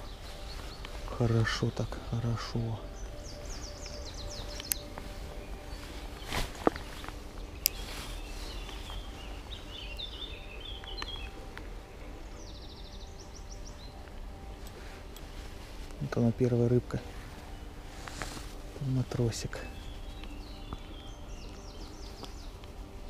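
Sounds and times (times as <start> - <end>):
bird trill: 0.0 - 15.4, 18.8 - 23.0
outdoor background: 0.0 - 23.0
small birds chirping: 0.0 - 23.0.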